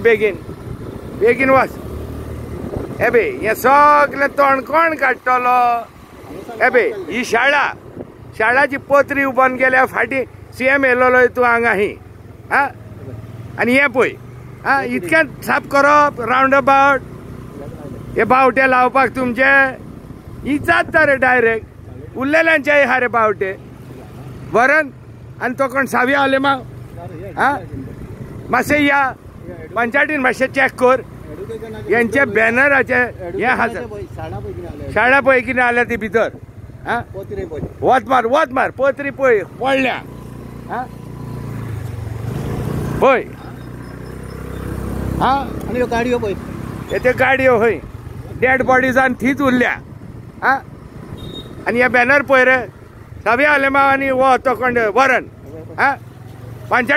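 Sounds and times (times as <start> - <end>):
road noise: 0.0 - 56.9
vehicle engine rumble: 0.0 - 56.9
man speaking: 3.0 - 7.8, 8.4 - 17.0, 28.5 - 40.1, 45.2 - 49.8, 50.4 - 50.7, 51.6 - 56.0.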